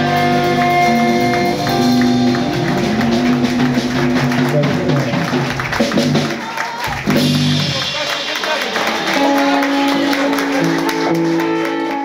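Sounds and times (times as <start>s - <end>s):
electric bass line: 0.0s - 6.3s, 6.9s - 8.0s
drum kit: 0.0s - 12.0s
electric guitar: 0.0s - 12.0s.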